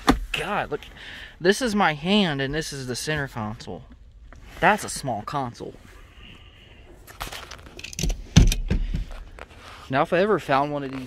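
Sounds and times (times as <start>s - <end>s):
rattling handling noise: 7.0s - 9.6s.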